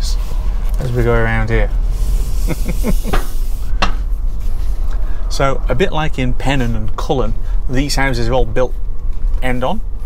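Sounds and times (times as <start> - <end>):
slow car rumble and hiss: 0.0 - 10.0
man laughing: 2.3 - 3.4.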